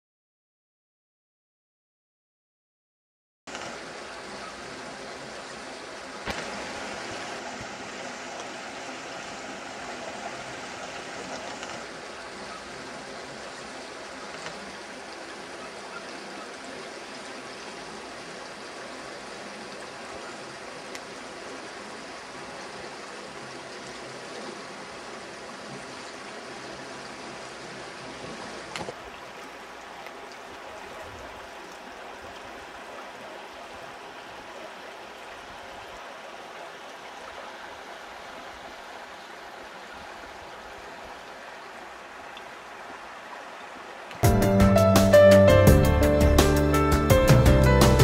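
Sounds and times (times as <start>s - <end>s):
river rushing over stones: 3.5s - 44.2s.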